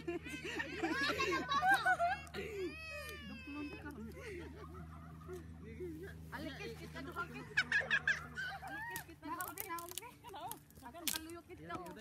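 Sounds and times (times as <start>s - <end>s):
children shouting and squealing: 0.0s - 5.0s.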